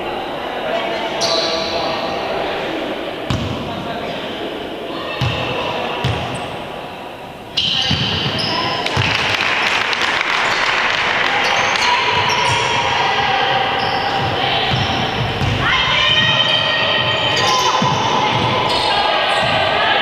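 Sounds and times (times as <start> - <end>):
hall chatter: 0.0 - 20.0
shoe squeaks: 7.6 - 8.8, 13.6 - 18.0
basketball bouncing on floor: 14.2 - 15.6.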